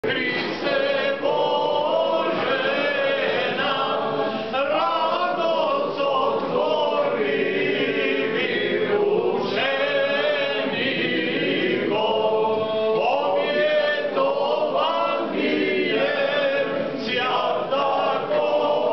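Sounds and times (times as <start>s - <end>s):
choir singing: 0.0s - 18.9s.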